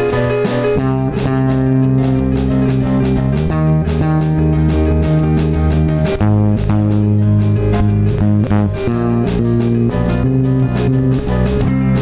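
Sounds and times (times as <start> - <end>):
bass guitar: 0.0 - 12.0
indie rock band playing: 0.0 - 12.0
steady cymbal beat: 0.0 - 12.0.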